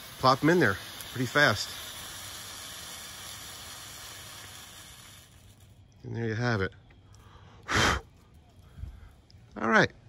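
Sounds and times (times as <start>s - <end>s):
fireworks lances hissing: 0.0s - 9.5s.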